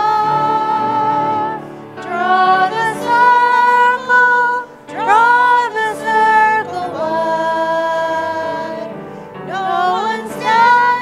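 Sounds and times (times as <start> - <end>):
woman singing a hymn: 0.0 - 11.0.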